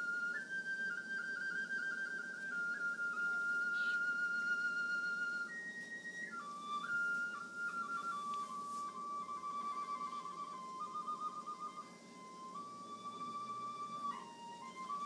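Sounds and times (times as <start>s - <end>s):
faint low accompaniment: 0.0s - 15.0s
high pure-toned folk melody: 0.0s - 15.0s.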